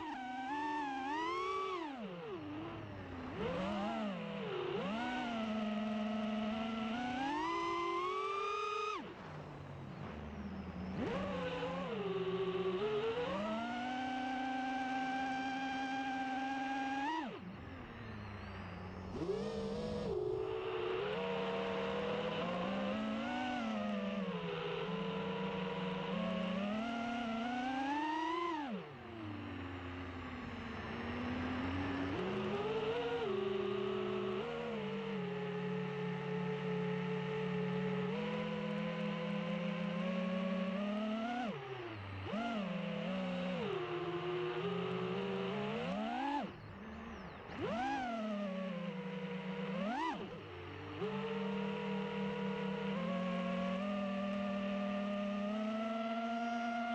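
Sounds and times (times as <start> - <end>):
quadcopter motors whining: 0.0 - 56.9.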